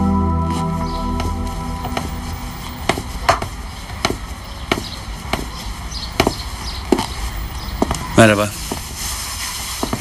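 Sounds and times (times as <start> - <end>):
footsteps on wooden stairs: 0.8 - 9.0, 9.6 - 10.0.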